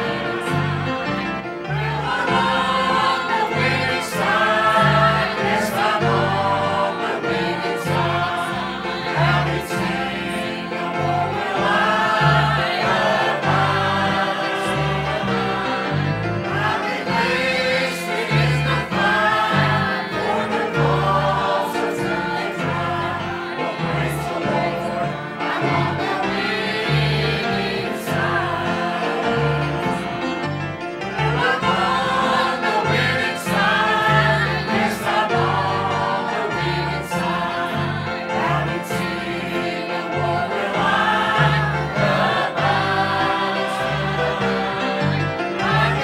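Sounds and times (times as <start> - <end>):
choir singing a hymn: 0.0 - 46.0.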